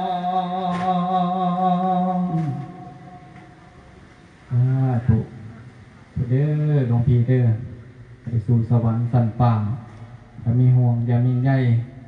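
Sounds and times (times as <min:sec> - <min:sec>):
man chanting long notes: 0:00.0 - 0:03.7.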